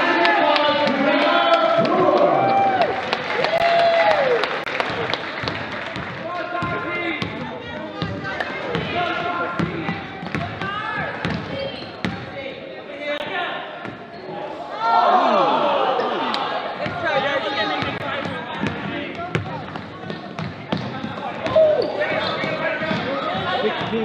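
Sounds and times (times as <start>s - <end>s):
spectators shouting and cheering: 0.0s - 5.6s, 14.4s - 18.0s
basketball bouncing on hardwood floor: 9.6s - 12.2s, 17.8s - 21.7s.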